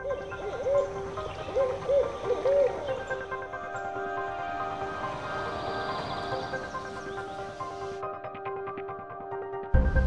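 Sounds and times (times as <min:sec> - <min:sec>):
owl hooting: 0:00.0 - 0:03.6
background music: 0:00.0 - 0:10.0.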